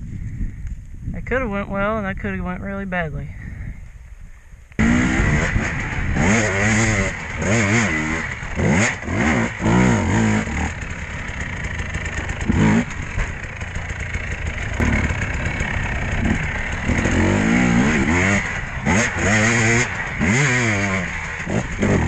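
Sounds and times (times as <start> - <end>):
dirt bike engine revving: 4.8 - 22.0.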